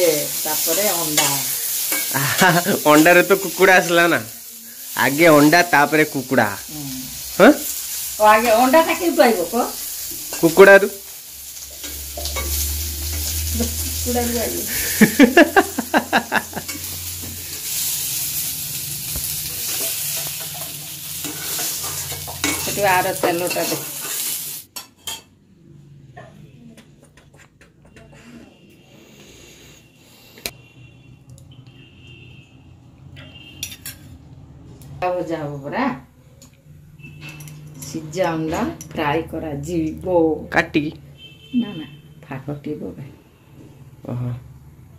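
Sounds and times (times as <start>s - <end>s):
oil sizzling as food fries: 0.0s - 25.3s
food being stirred: 0.1s - 25.4s
metal clinking against a steel pan: 0.8s - 3.3s, 16.6s - 17.0s, 19.6s - 25.3s.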